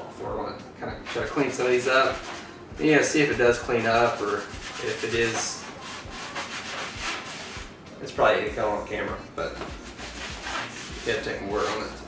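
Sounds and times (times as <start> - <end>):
wet cloth scrubbing fabric: 4.0 - 7.7.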